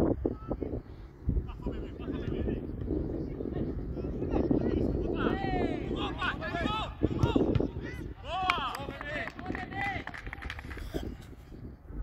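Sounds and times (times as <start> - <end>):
players shouting: 5.1 - 10.0.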